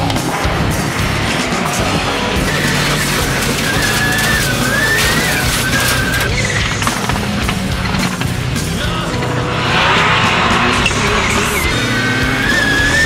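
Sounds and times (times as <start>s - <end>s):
music soundtrack: 0.0s - 13.0s
racing car engines: 0.0s - 13.0s.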